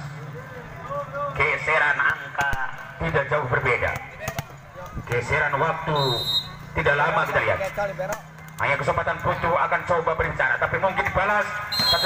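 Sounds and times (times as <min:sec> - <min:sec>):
volleyball bouncing on court: 0:02.0 - 0:05.8.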